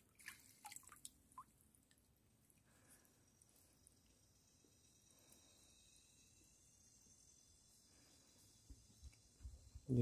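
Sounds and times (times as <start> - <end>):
water dripping and splashing: 0.0 - 2.6.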